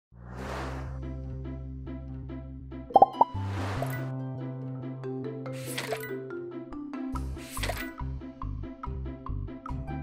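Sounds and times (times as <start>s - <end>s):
upbeat background music: 1.0s - 10.0s
cartoon pop sound effects: 2.9s - 3.4s.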